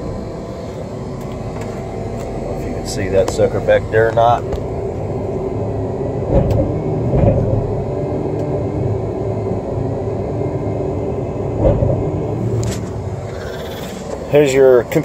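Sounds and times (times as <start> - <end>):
diesel engine idling: 0.0 - 15.0.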